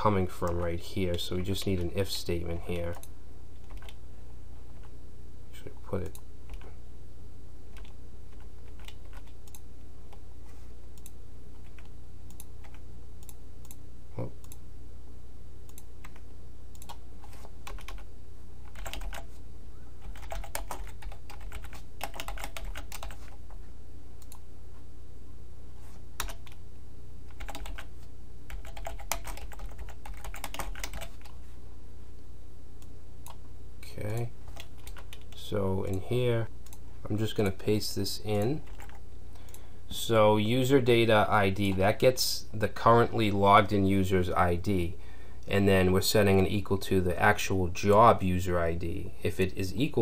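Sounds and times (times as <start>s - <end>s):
steady low hum: 0.0s - 50.0s
typing on computer keyboard: 2.9s - 4.0s, 7.8s - 9.6s, 17.6s - 18.1s, 18.7s - 19.3s, 20.0s - 23.4s, 26.2s - 26.6s, 27.3s - 27.9s, 28.5s - 31.3s, 34.5s - 35.3s, 38.6s - 39.6s.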